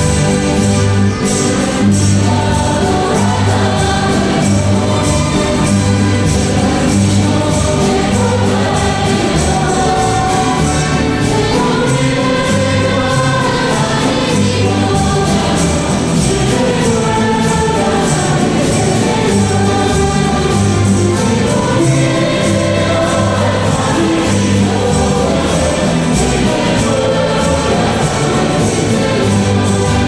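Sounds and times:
choir singing: 0.0 - 30.0
instruments with bass line: 0.0 - 30.0
steady percussion beat: 0.0 - 30.0.

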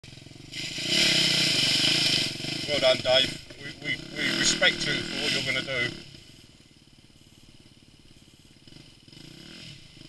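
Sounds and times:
dirt bike engine under throttle: 0.0 - 10.0.

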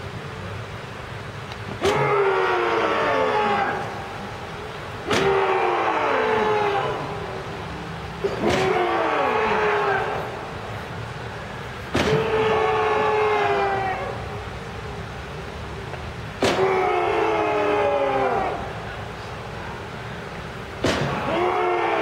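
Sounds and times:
group of people yelling in unison: 1.8 - 4.2, 5.0 - 7.4, 8.2 - 10.6, 11.9 - 14.4, 16.4 - 18.9, 20.8 - 22.0.

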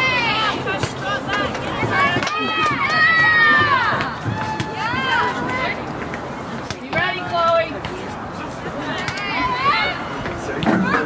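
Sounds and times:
outdoor background noise: 0.0 - 11.0
high-pitched voices shouting: 1.2 - 5.8.

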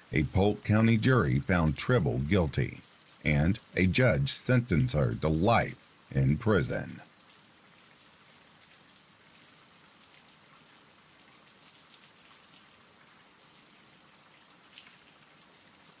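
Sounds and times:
steady rain: 0.0 - 16.0.

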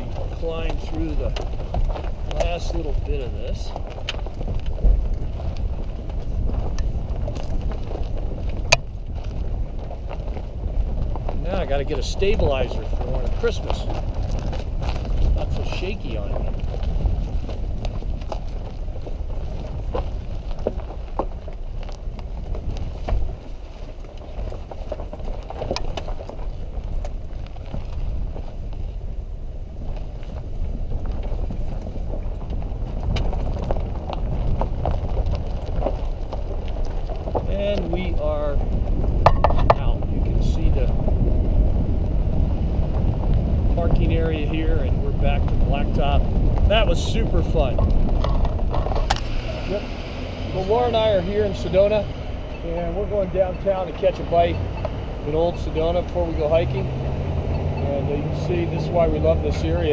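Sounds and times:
knocks and rattles over bumps: 0.0 - 49.4
vehicle driving on rocky road: 0.0 - 59.9.

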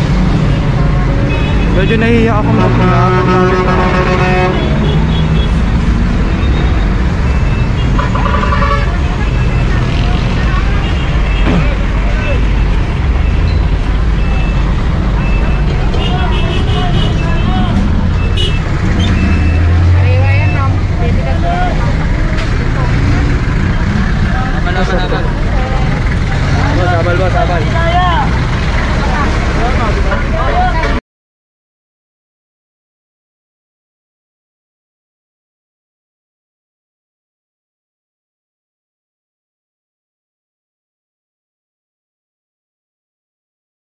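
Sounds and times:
traffic rumble: 0.0 - 31.0
passers-by talking: 8.6 - 13.4, 14.4 - 18.2, 19.0 - 31.0.

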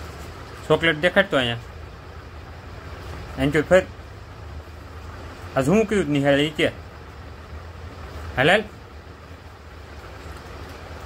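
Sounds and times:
faint background hiss: 0.0 - 11.0
steady low rumble: 0.0 - 11.0.

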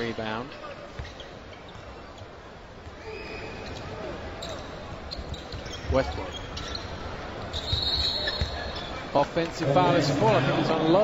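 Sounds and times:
high squeak: 3.0 - 9.0.

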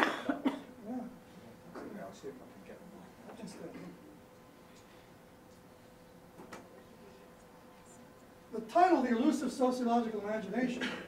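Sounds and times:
person coughing: 0.0 - 0.7, 10.8 - 11.0.

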